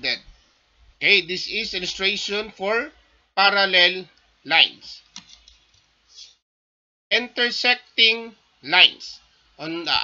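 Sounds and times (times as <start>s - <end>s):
computer mouse clicks: 5.1s - 5.9s.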